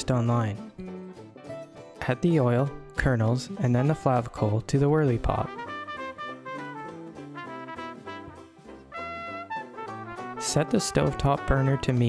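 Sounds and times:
jazzy brass music: 0:05.4 - 0:12.0.

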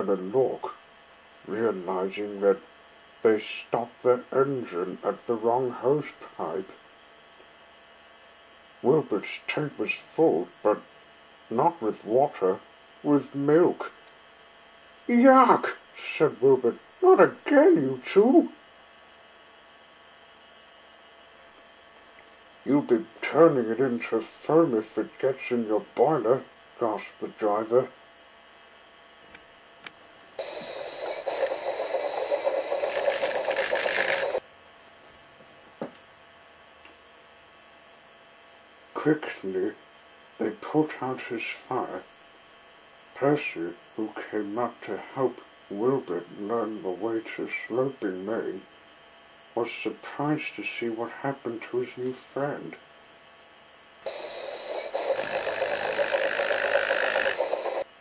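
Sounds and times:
steam locomotive hiss: 0:30.4 - 0:34.4, 0:54.1 - 0:57.9
toy train whirring and rattling: 0:30.4 - 0:34.4, 0:54.1 - 0:57.9.

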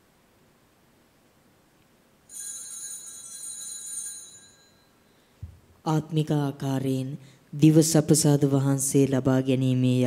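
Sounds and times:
small metal bell ringing: 0:02.3 - 0:05.2.

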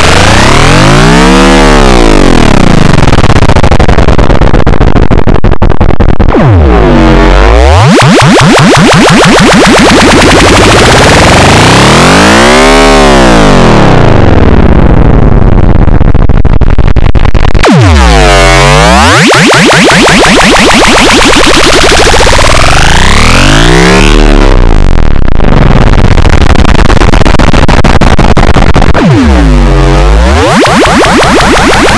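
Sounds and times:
distorted electronic noise music: 0:00.0 - 0:31.9
buzzing tone swooping in pitch: 0:06.3 - 0:15.4, 0:17.6 - 0:25.0, 0:29.0 - 0:31.9.

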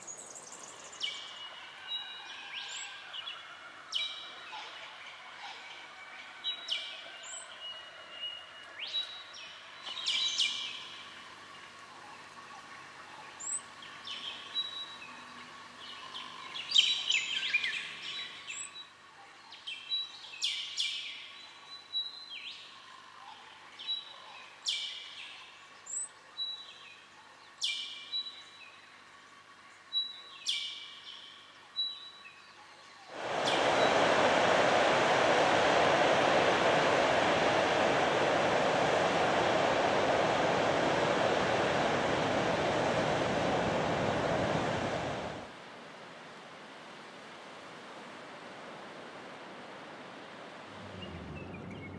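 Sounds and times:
thrush whistled calls: 0:33.1 - 0:37.0
ocean surf breaking: 0:33.1 - 0:45.7.

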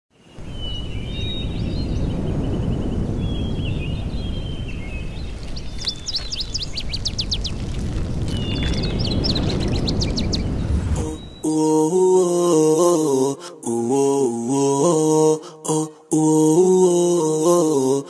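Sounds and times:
birds chirping and trilling: 0:00.1 - 0:11.8.

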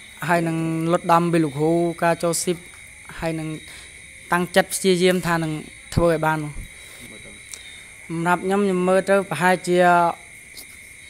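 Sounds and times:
high-pitched insect drone: 0:00.0 - 0:11.0
man speaking: 0:06.2 - 0:07.5.

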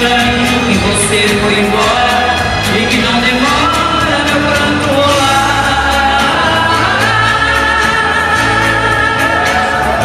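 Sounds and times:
amplified backing music: 0:00.0 - 0:10.0
woman singing into a microphone: 0:04.8 - 0:10.0.

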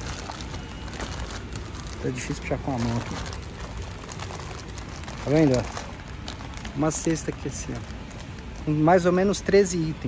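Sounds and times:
plastic wrapping rustling: 0:00.0 - 0:09.9
store background noise: 0:00.0 - 0:10.0.

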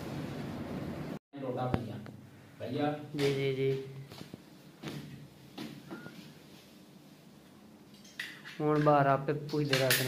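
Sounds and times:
man talking: 0:01.4 - 0:04.0.

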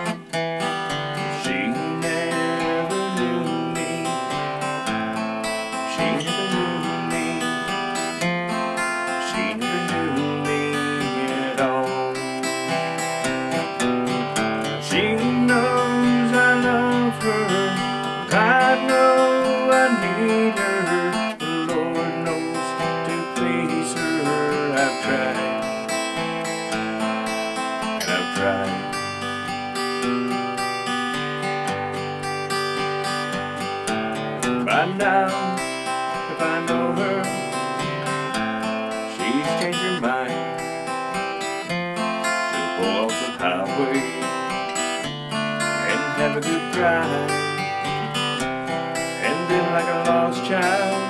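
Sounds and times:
acoustic guitar strumming chords: 0:00.0 - 0:51.0.

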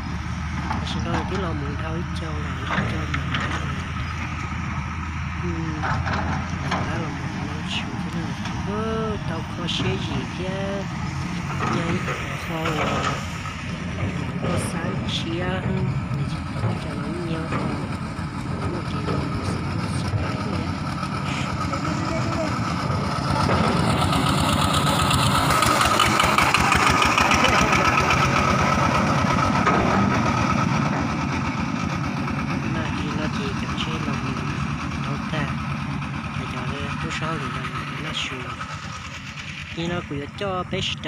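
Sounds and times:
truck engine running: 0:00.0 - 0:41.0.

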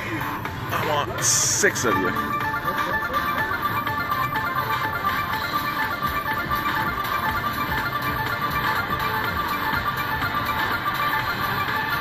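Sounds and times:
slot machine electronic music: 0:00.0 - 0:12.0.

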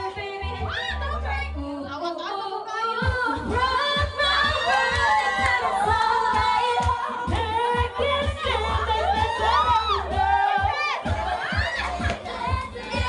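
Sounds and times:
woman singing into microphone: 0:00.0 - 0:13.0
backing track with steady beat: 0:02.9 - 0:13.0.

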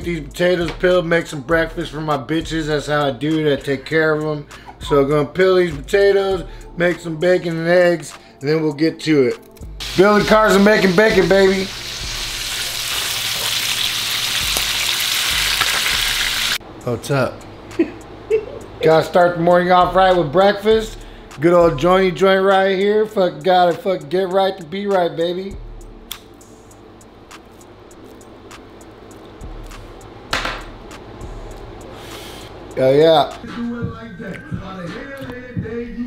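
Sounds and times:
bacon sizzling in a frying pan: 0:09.8 - 0:16.6
low room hum: 0:16.6 - 0:36.0
lighter clicks: 0:26.0 - 0:26.4.

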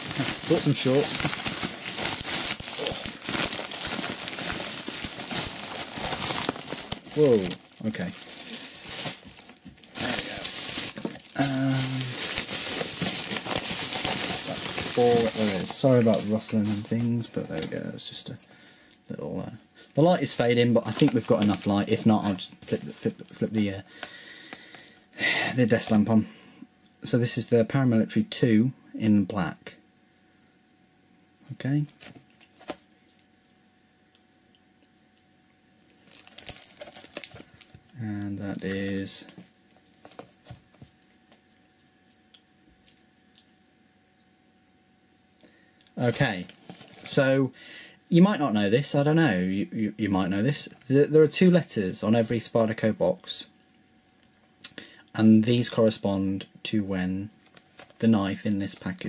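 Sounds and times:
plastic bag rustling and crinkling: 0:00.0 - 0:18.9, 0:20.0 - 0:23.6, 0:31.9 - 0:33.2, 0:35.9 - 0:41.8, 0:46.0 - 0:47.2, 0:57.3 - 0:59.0.

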